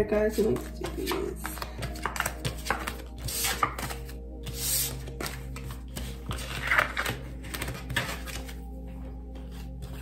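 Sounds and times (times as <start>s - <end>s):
cards tapping and flicking: 0.4s - 8.6s.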